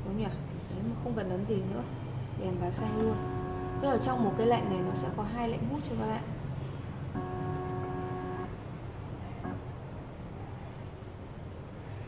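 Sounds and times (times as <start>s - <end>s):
steady low hum: 0.0s - 12.0s
electronic analyzer beeps: 2.7s - 5.2s.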